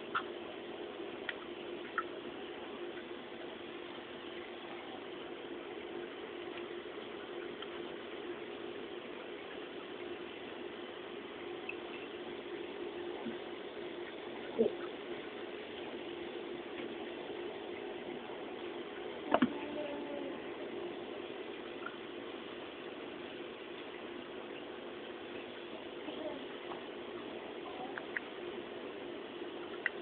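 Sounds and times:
background hiss and low hum: 0.0 - 30.0.

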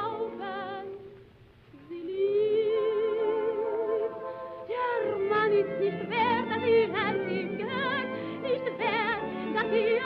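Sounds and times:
soprano singing with vibrato: 0.0 - 10.0.

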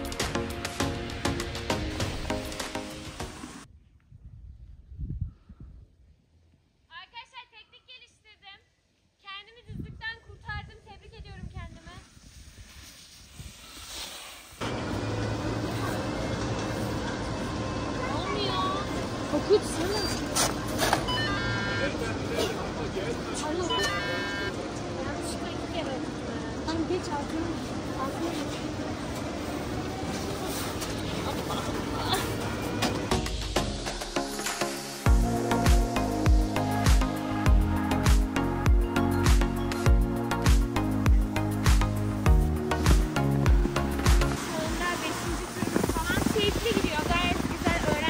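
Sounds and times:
music: 0.0 - 3.6, 32.8 - 45.9
people chattering: 14.8 - 33.2
electronic beeps: 21.0 - 22.0, 23.6 - 24.5.

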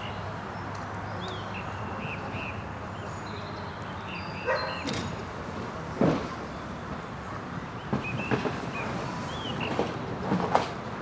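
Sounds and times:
dog barking: 4.4 - 4.8.

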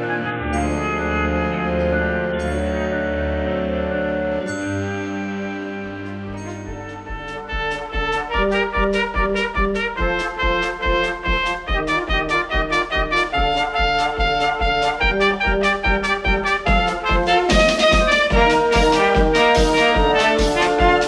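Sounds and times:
held chord: 0.0 - 8.6
trumpet melody: 0.0 - 21.0
steady drum beat: 6.3 - 21.0.

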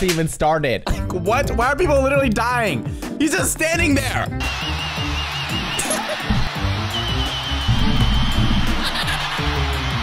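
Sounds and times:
bass-heavy music: 0.9 - 10.0.

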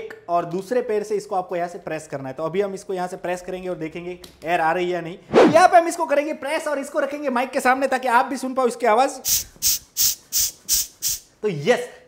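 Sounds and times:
air pump hissing puffs: 9.2 - 11.3.

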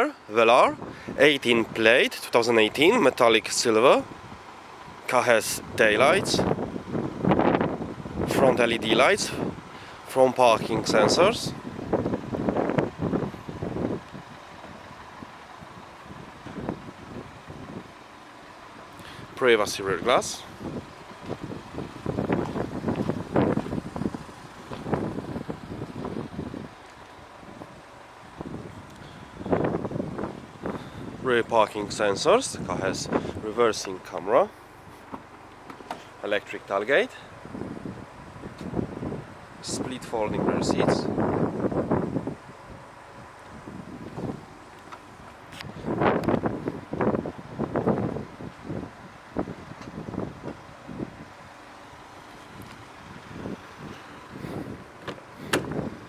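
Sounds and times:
wind buffeting microphone: 5.5 - 9.8, 10.6 - 18.0, 19.2 - 34.0, 37.4 - 44.6, 45.2 - 51.5, 52.4 - 56.0
handheld camera rustling and thumps: 54.5 - 55.9.

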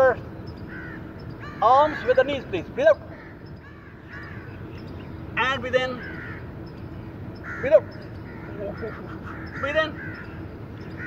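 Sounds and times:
faint bird calls: 0.0 - 11.0
low background noise: 0.0 - 11.0.

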